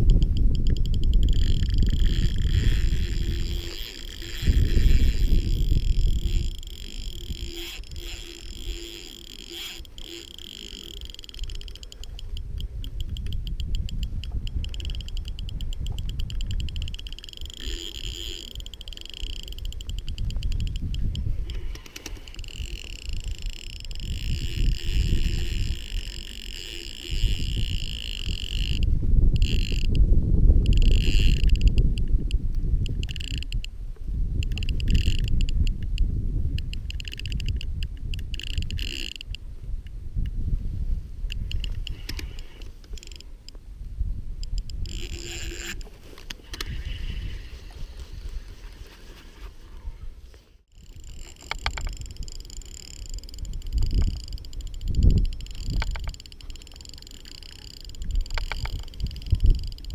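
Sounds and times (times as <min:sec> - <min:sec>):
fishing reel whirring: 0:00.0 - 0:30.0, 0:30.6 - 0:39.5, 0:41.3 - 0:43.4, 0:44.4 - 0:49.0, 0:50.7 - 0:59.9
wind buffeting microphone: 0:00.0 - 0:45.8, 0:46.4 - 0:49.0, 0:49.8 - 0:59.9.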